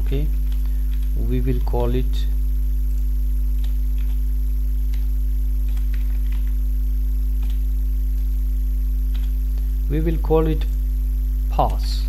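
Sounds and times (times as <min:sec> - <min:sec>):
electrical mains hum: 0:00.0 - 0:12.0
computer keyboard clicks: 0:03.6 - 0:04.2, 0:04.9 - 0:06.6, 0:07.4 - 0:07.7, 0:09.1 - 0:09.4.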